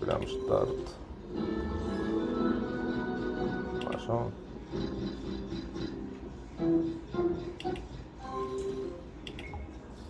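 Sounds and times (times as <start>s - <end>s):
slot machine musical notes: 0.0s - 9.7s.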